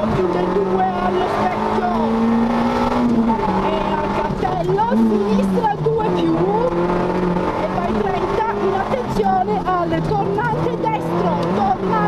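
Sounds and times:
rally car engine revving: 0:00.0 - 0:12.0
person calling out: 0:07.8 - 0:12.0.

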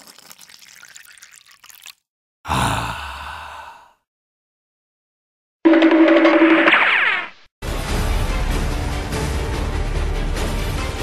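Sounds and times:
loud exhaled sigh: 0:02.5 - 0:04.0.

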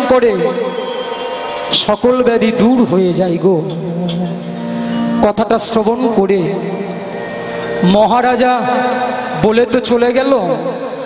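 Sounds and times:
harmonium chord: 0:01.3 - 0:11.0.

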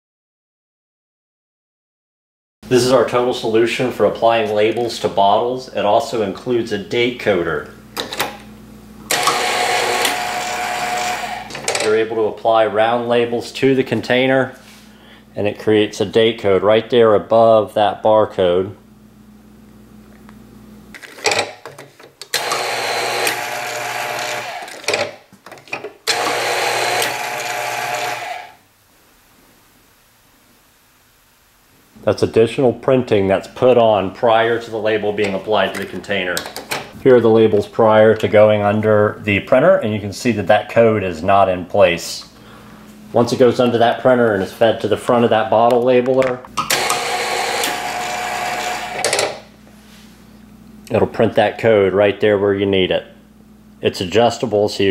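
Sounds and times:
bottle labeler motor whine: 0:09.0 - 0:11.8, 0:22.3 - 0:25.0, 0:26.0 - 0:28.6, 0:46.6 - 0:49.4.

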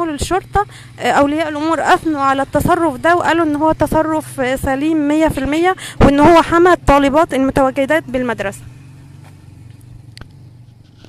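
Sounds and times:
motorcycle engine running: 0:00.0 - 0:11.0.

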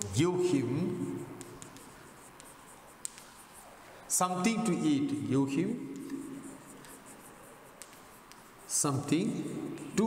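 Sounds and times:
chalk scratching on chalkboard: 0:00.0 - 0:10.0.

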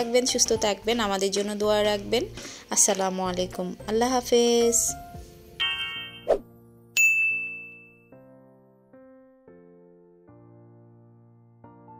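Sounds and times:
bright bell ding: 0:07.0 - 0:08.1.

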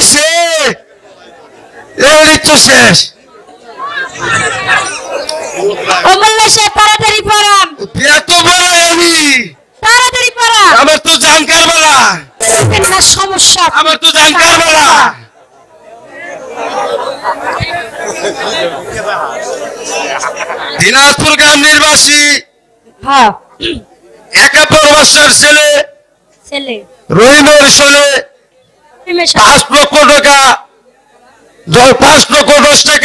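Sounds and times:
indistinct chatter: 0:00.0 - 0:33.0
quiet voices talking: 0:00.8 - 0:08.0, 0:14.2 - 0:21.6, 0:22.4 - 0:24.7
amplified speech: 0:02.0 - 0:15.3.

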